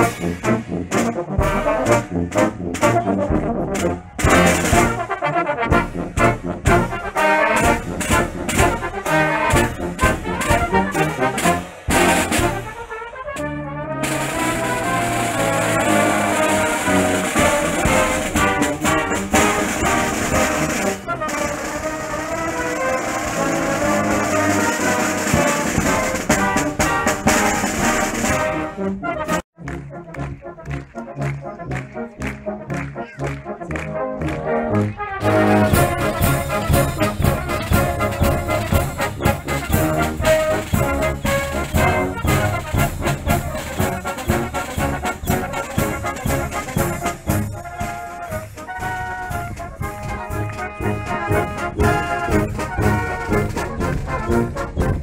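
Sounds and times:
brass band playing: 0:00.0 - 0:55.0
drum and cymbal strokes: 0:14.0 - 0:22.2.

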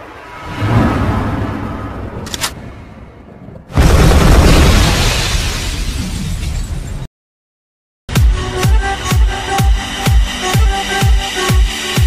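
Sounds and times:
deep rumbling whoosh: 0:00.0 - 0:04.3.

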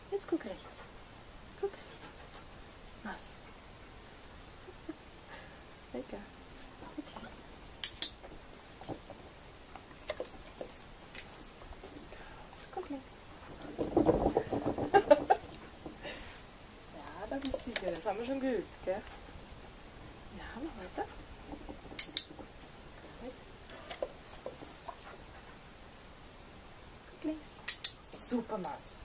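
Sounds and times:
sharp clicks: 0:07.6 - 0:08.2, 0:22.0 - 0:22.7, 0:27.6 - 0:28.2.

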